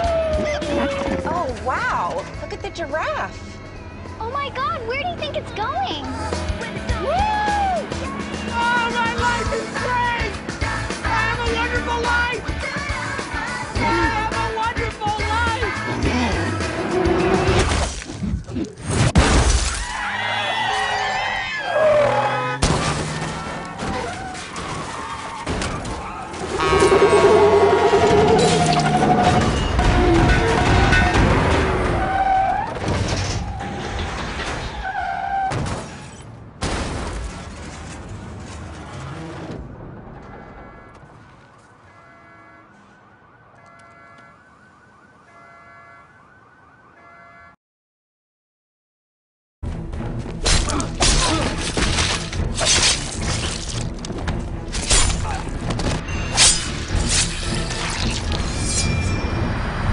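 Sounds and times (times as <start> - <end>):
car alarm warbling tone: 40.2 - 41.2, 41.8 - 47.6
car alarm beeping tones: 40.5 - 41.2, 41.8 - 47.6
glass shattering: 50.5 - 54.0, 56.1 - 59.2.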